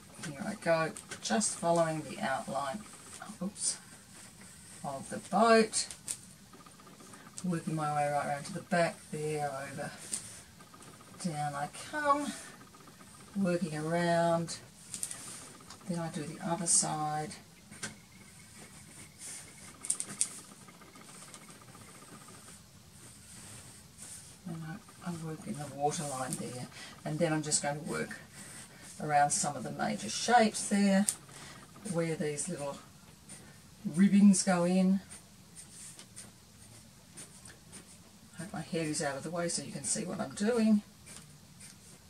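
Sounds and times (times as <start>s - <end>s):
pencil scratching on paper: 15.1s - 39.0s.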